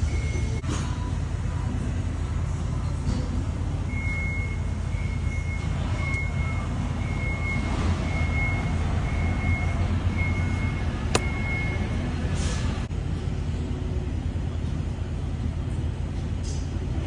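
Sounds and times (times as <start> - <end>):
low mechanical rumble: 0.0 - 17.0.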